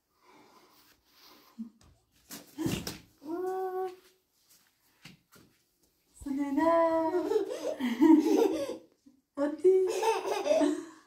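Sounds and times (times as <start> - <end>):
toddler laughing: 7.1 - 8.9, 9.9 - 10.8.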